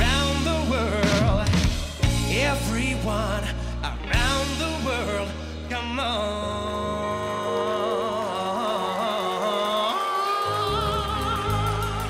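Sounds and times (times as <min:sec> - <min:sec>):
light musical accompaniment: 0:00.0 - 0:12.0
wordless vocal run with vibrato: 0:00.0 - 0:12.0.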